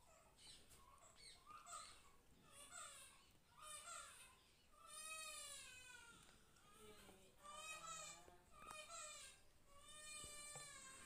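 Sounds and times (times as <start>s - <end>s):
distant animal calls: 0.0s - 6.2s.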